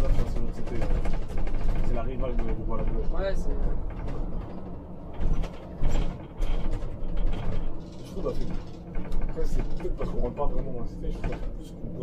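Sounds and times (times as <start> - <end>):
rattling knocks from bus body: 0.0 - 11.8
bus engine and road rumble: 0.0 - 12.0.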